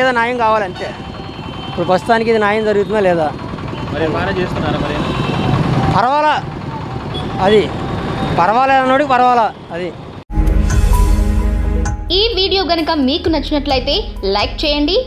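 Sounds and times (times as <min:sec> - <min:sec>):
vehicle engine rumbling: 0:00.0 - 0:10.2
street traffic noise: 0:00.0 - 0:10.3
man talking: 0:01.8 - 0:05.2.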